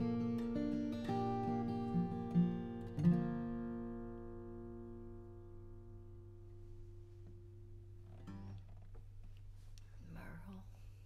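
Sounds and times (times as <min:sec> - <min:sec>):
acoustic guitar chord ringing: 0:00.0 - 0:08.9
low steady hum: 0:01.4 - 0:11.0.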